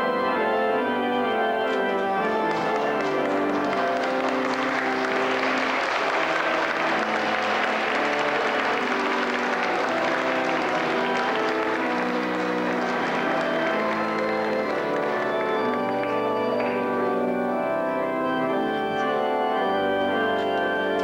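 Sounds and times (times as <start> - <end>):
church organ chords: 0.0 - 21.0
congregation applauding: 1.6 - 21.0.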